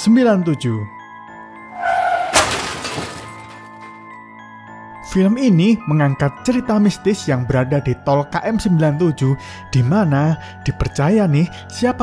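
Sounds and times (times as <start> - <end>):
background music: 0.0 - 12.0
glass shattering smash: 2.1 - 3.9.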